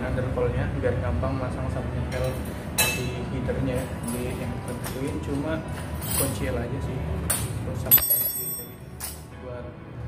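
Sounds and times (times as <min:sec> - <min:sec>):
metal wrench clinking: 0:07.9 - 0:09.2.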